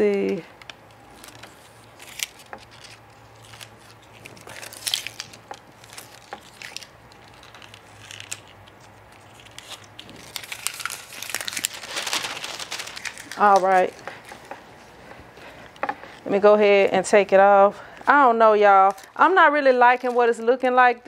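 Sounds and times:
plastic film crinkling: 0:00.1 - 0:16.4, 0:18.0 - 0:20.9.

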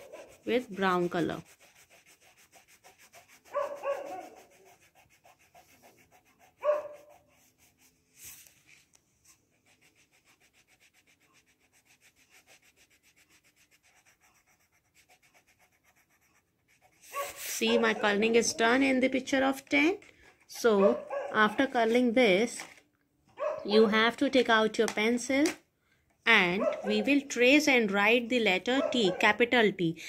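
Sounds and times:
coloring strokes scratching paper: 0:00.0 - 0:22.8.

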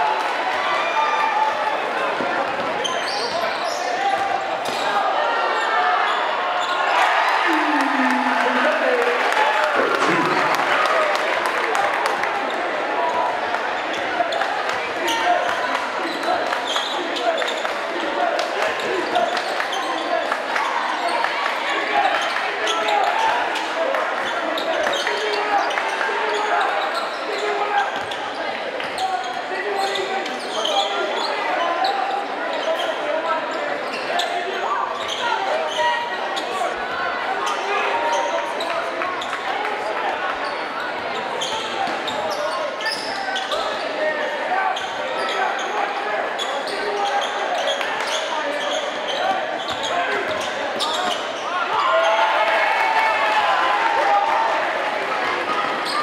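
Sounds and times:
crowd chattering: 0:00.0 - 0:52.1, 0:53.2 - 0:56.0.

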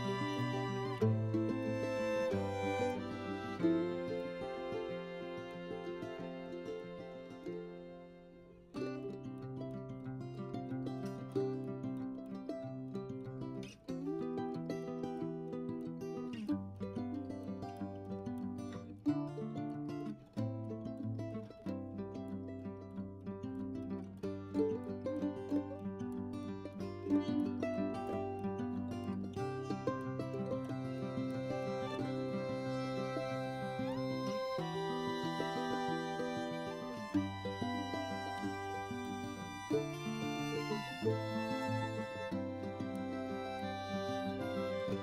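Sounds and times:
plucked string background music: 0:00.0 - 0:45.0.

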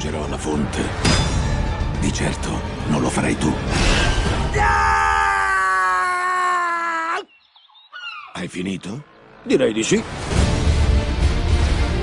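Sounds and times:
man screaming: 0:04.5 - 0:07.3.

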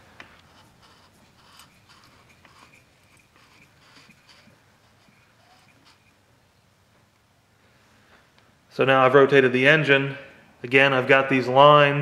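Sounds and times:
scratchy rustling and light clicks: 0:00.2 - 0:06.2.

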